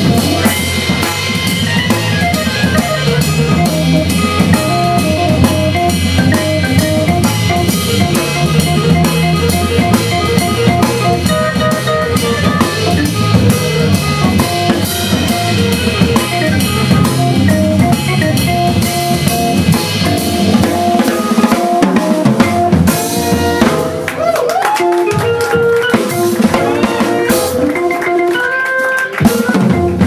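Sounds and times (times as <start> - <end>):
organ bass line: 0.0 - 23.9, 25.6 - 28.5, 29.2 - 30.0
drum kit with snare and rimshots: 0.0 - 30.0
jazz blues band playing: 0.0 - 30.0.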